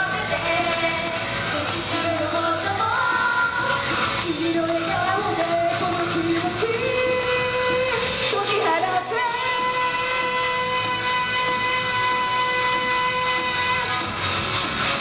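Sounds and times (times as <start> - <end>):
girls group singing pop song: 0.0 - 14.3
backing music: 0.0 - 15.0.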